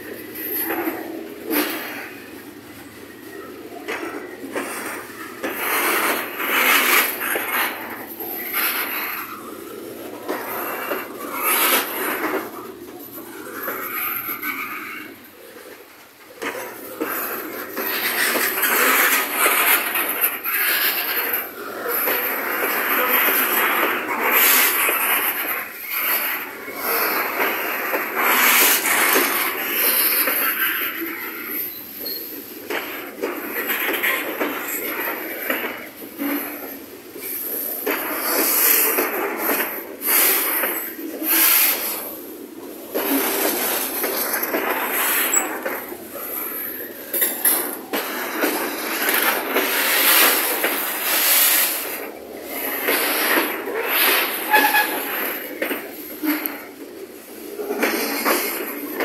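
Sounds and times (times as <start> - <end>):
train cars knocking: 0.0 - 59.0
train wheels grinding on rails: 0.0 - 59.0.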